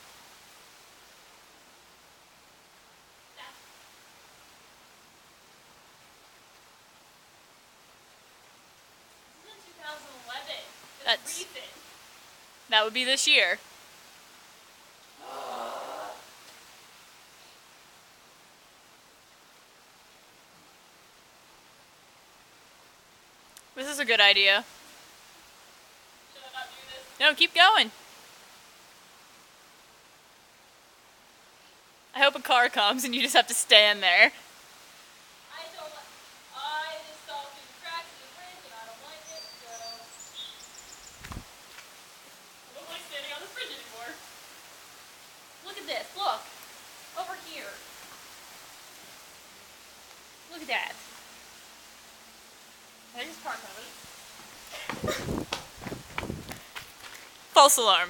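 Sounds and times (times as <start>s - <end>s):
people talking: 9.4s - 11.8s, 12.7s - 13.6s, 23.8s - 24.7s, 26.3s - 27.9s, 32.2s - 34.4s, 35.5s - 40.1s, 42.7s - 44.2s, 45.6s - 46.5s, 47.2s - 47.8s, 50.5s - 51.0s, 53.2s - 54.0s, 57.6s - 58.0s
feet landing on wooden deck: 54.7s - 57.2s.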